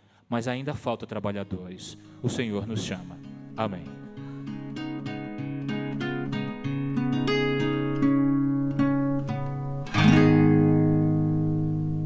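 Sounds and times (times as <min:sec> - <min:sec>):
guitar chord ringing: 0:02.9 - 0:12.0.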